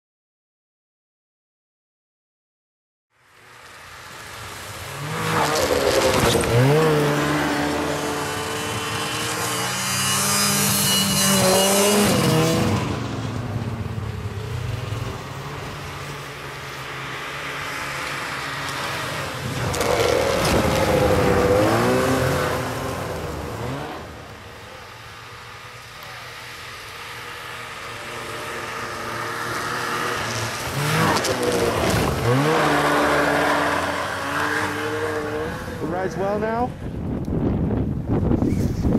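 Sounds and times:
snowmobile engines revving past: 3.2s - 37.0s.

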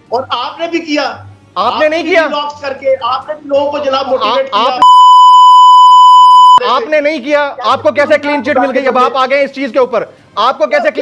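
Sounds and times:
censor bleep tone: 4.8s - 6.6s.

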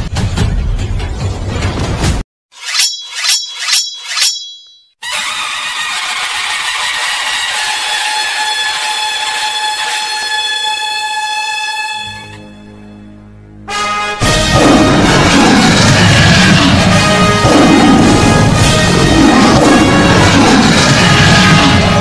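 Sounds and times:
metallic chime hits: 2.6s - 4.9s
held chord of high tones: 2.7s - 5.0s.

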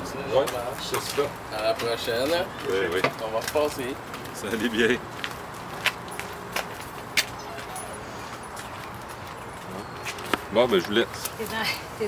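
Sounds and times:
low outdoor background noise: 0.0s - 12.0s
footsteps on pavement: 0.3s - 12.0s.

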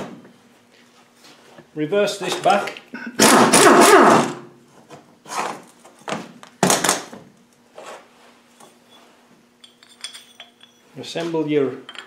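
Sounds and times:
pneumatic impact gun burst: 3.2s - 4.4s
faint steady hum: 4.3s - 12.0s
metal tools knocking and scraping: 9.6s - 10.9s.

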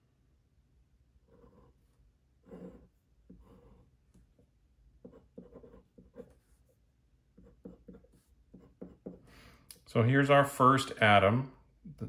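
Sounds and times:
pen scratching on paper: 1.2s - 9.3s.

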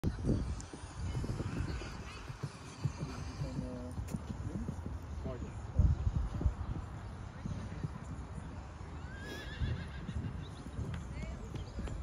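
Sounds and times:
hoofbeats on sand: 0.3s - 12.0s.

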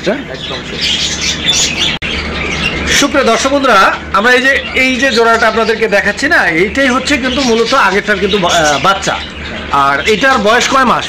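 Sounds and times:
birds chirping and squawking: 0.0s - 11.0s.

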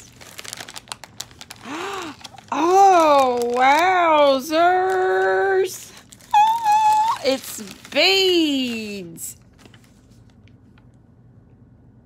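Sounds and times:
packaging crinkling: 0.0s - 10.9s
person saying ooh: 6.3s - 7.6s.

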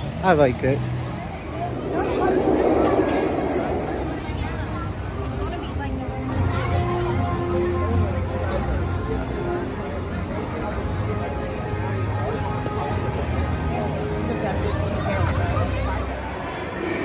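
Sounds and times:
chatter of visitors: 0.0s - 17.0s.

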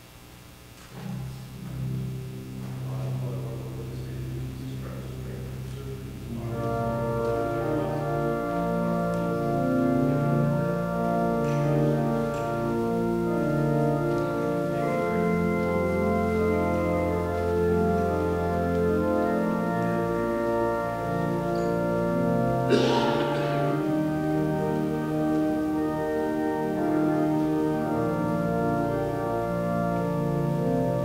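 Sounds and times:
organ playing sustained chords: 0.0s - 31.0s
low held organ bass note: 1.0s - 31.0s.

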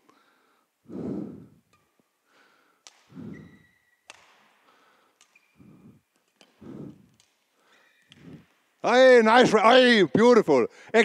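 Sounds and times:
racket hitting shuttlecock: 2.8s - 4.6s
court shoes squeaking: 2.9s - 4.6s, 5.2s - 8.4s.

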